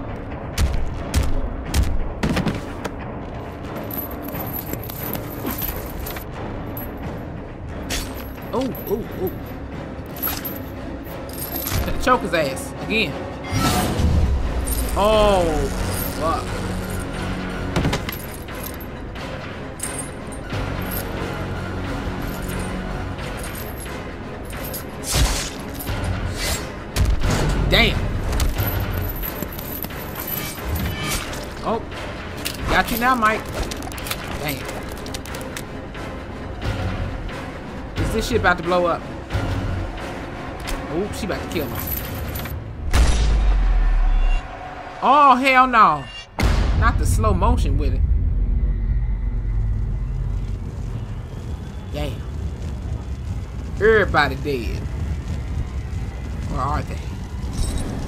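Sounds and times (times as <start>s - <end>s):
metallic jangle: 7.9s - 12.0s, 18.1s - 19.0s, 19.8s - 26.1s, 28.5s - 31.5s, 41.5s - 42.6s.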